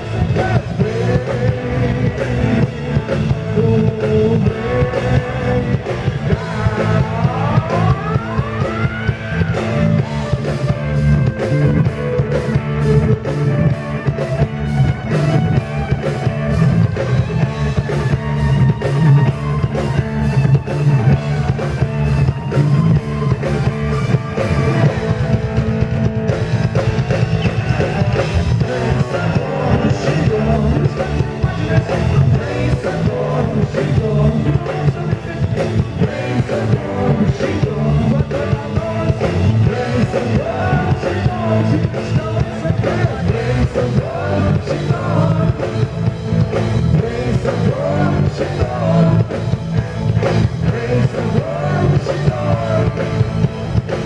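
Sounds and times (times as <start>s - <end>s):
male singer: 0.0s - 10.1s, 27.4s - 54.0s
live rock band playing: 0.0s - 54.0s.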